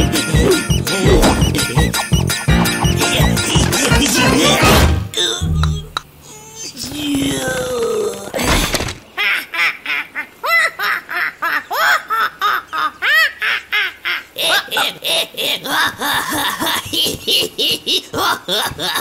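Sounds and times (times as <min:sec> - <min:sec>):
cartoon parrot cackling: 0:00.0 - 0:04.6.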